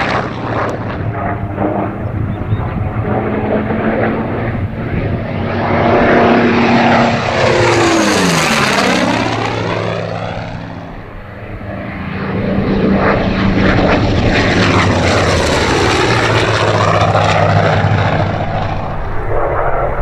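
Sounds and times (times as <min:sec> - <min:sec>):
propeller plane fly-by: 0:00.0 - 0:20.0.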